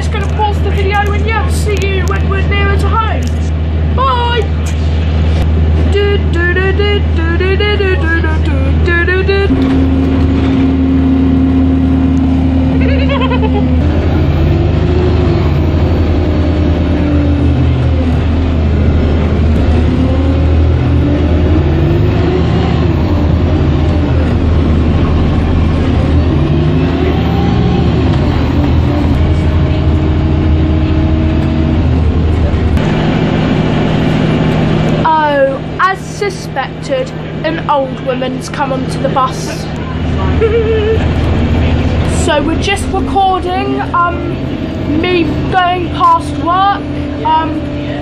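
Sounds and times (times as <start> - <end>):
bus engine drone: 0.0 - 48.0.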